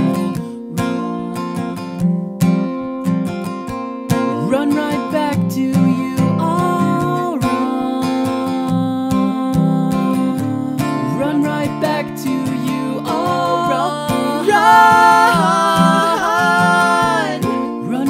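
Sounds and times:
acoustic guitar strumming chords: 0:00.0 - 0:18.0
person singing: 0:04.4 - 0:18.0.

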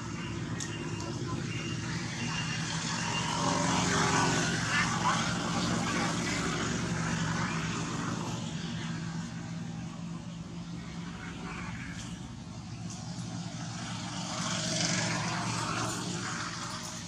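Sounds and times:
distant engine droning: 0:00.0 - 0:17.0.

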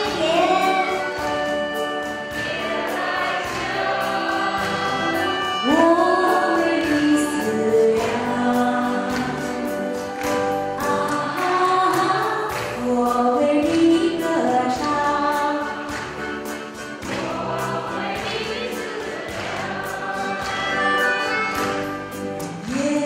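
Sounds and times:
live band accompaniment: 0:00.0 - 0:23.0
woman singing into a microphone: 0:05.4 - 0:10.1, 0:10.8 - 0:15.9, 0:22.7 - 0:23.0.

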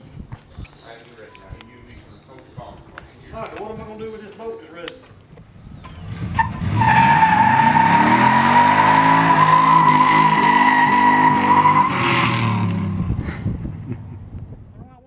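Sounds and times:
tires squealing: 0:05.9 - 0:13.1
engine revving hard: 0:06.0 - 0:13.1.

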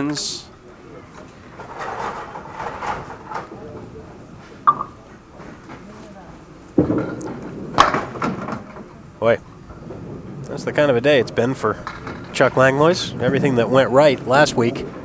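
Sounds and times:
spectators murmuring: 0:00.0 - 0:15.0.

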